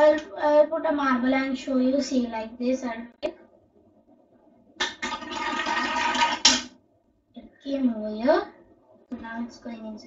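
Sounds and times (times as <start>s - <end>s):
marble rolling on plastic track: 4.9s - 6.6s.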